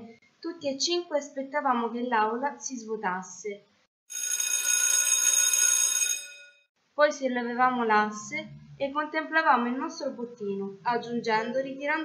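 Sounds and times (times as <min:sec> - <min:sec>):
school bell ringing: 0:04.1 - 0:06.6.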